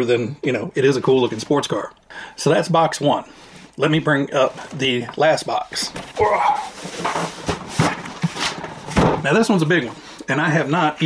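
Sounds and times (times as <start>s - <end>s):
cardboard box scraping and rustling: 6.0s - 9.0s
box thumping on table: 7.0s - 9.3s.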